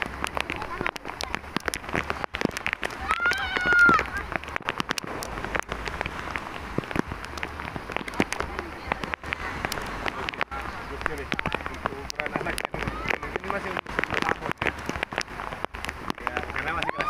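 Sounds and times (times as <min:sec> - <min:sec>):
child's high-pitched shout: 0:03.0 - 0:04.3.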